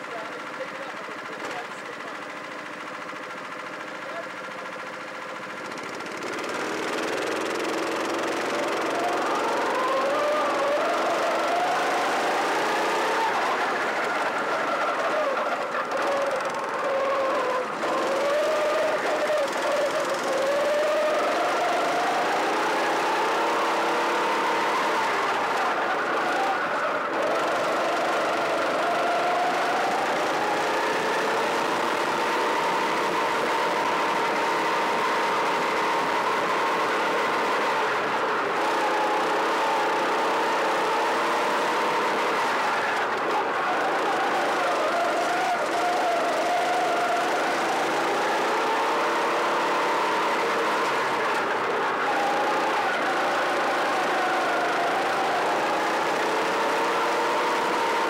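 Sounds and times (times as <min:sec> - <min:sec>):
kart engine revving: 0:00.0 - 0:58.0.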